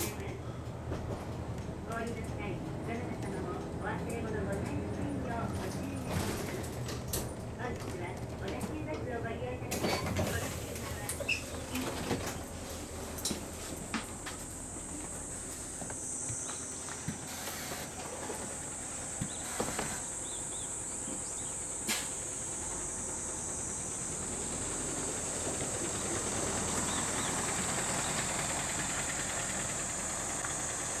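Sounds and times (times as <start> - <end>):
diesel bus engine: 0.0 - 31.0
high-pitched insect drone: 19.3 - 28.0
tyres on wet road: 21.8 - 31.0.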